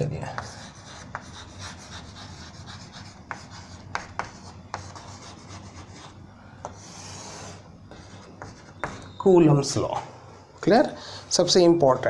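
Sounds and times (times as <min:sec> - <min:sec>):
chalk scratching on blackboard: 0:00.3 - 0:09.0
chalk tapping on board: 0:00.3 - 0:09.0.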